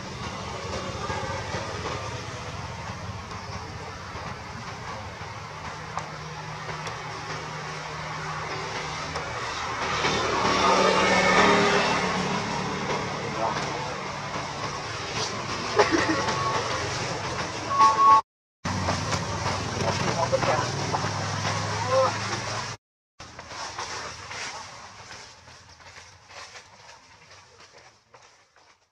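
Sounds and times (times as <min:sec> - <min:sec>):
steady engine hum: 0:00.0 - 0:27.8
people's voices: 0:11.8 - 0:17.5, 0:19.0 - 0:22.8.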